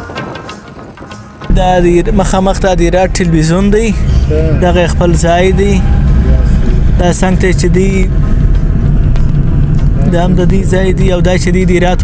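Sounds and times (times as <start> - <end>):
moving car rumble: 0.9 - 12.0
man speaking: 1.5 - 8.1.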